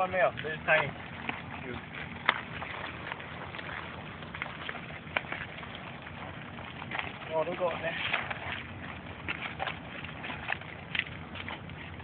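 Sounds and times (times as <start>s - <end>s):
outdoor background noise: 0.0s - 12.0s.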